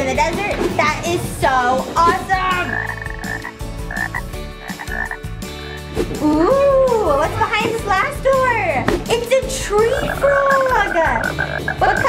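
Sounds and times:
frog croaking: 0:02.5 - 0:05.3, 0:09.8 - 0:12.0.

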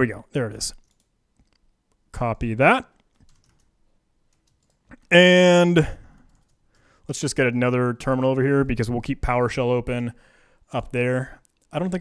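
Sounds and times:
faint keyboard clicks: 0:00.6 - 0:02.1, 0:02.9 - 0:03.7, 0:04.3 - 0:05.1, 0:06.1 - 0:06.9, 0:10.8 - 0:12.0.

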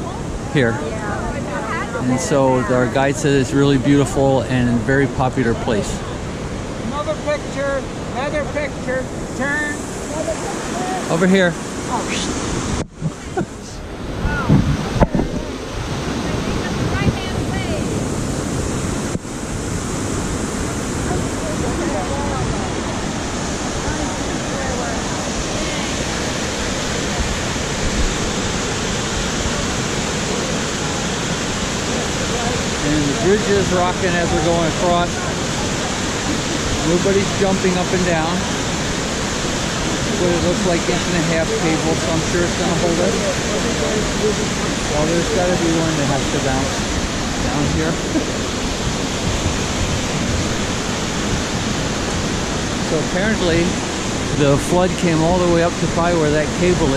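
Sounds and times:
river water rushing over boulders: 0:00.0 - 0:56.9.

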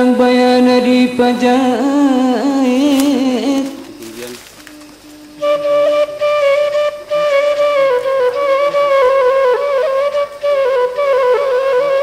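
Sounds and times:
flute playing long held notes: 0:02.8 - 0:12.0.

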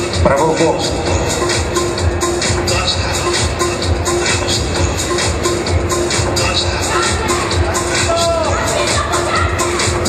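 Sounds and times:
electronic dance music: 0:00.0 - 0:10.0.

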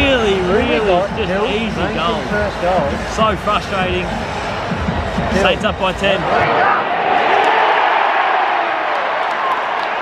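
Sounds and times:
stadium crowd cheering: 0:03.5 - 0:10.0.

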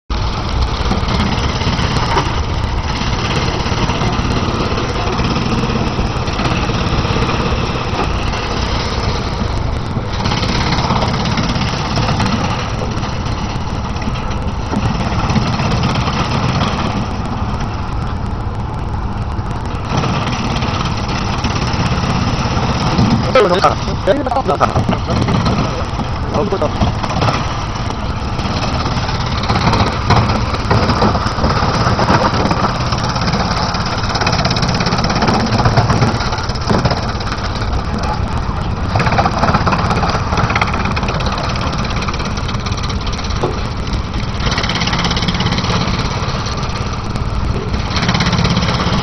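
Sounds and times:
wood chipper running: 0:00.1 - 0:49.0
person speaking: 0:23.2 - 0:27.0.

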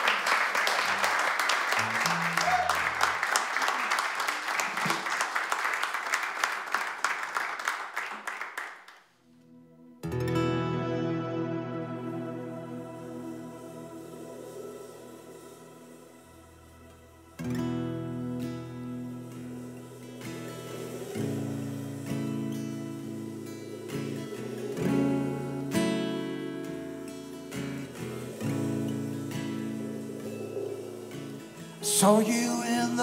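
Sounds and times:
strummed acoustic guitar chords: 0:10.0 - 0:33.0
soft wash of sound: 0:10.6 - 0:33.0.

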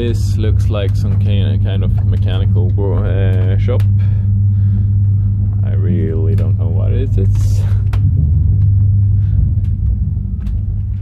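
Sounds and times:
deep engine room hum: 0:00.0 - 0:11.0.

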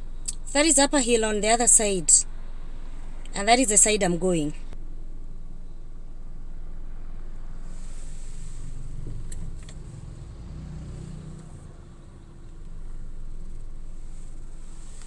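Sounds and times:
car engine and road rumble: 0:00.0 - 0:15.0.

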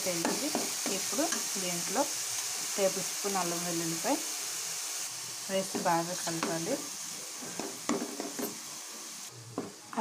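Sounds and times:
oil sizzling: 0:00.0 - 0:10.0.

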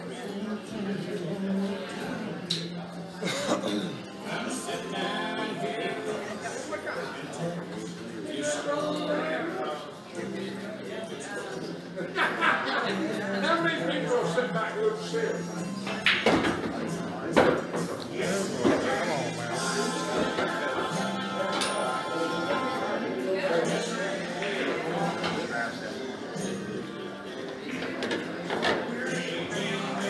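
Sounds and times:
bar background music: 0:00.0 - 0:30.0
voices of people: 0:00.0 - 0:30.0.

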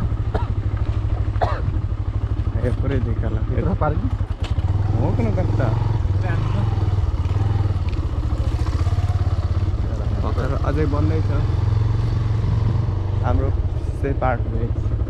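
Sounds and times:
motorcycle engine running slowly: 0:00.0 - 0:15.0.

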